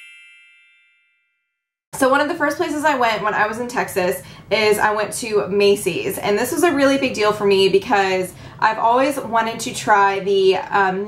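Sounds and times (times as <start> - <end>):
bright bell-like chime: 0.0 - 1.5.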